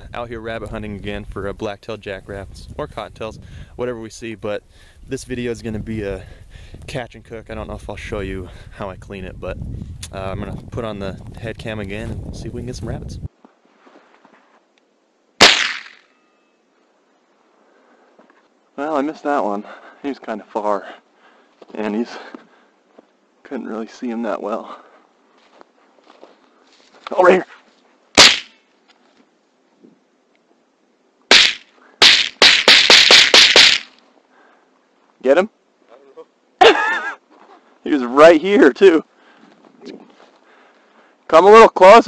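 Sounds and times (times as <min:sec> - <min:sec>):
gunshot: 0:15.4 - 0:16.1, 0:28.2 - 0:28.6, 0:31.3 - 0:33.9
shotgun shots: 0:15.4 - 0:16.1, 0:28.2 - 0:28.6, 0:31.3 - 0:33.9.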